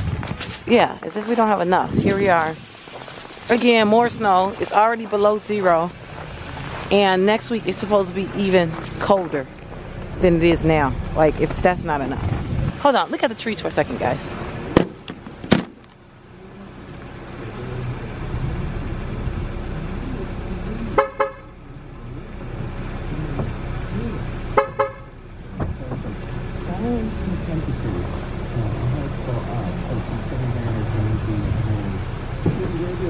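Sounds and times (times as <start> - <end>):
steady low hum: 3.4 - 33.0
short car horn toots: 21.0 - 21.5, 24.6 - 25.2.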